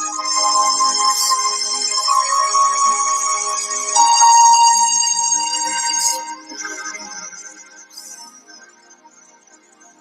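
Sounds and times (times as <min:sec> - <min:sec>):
keyboard pad sustained chords: 0:00.0 - 0:08.2.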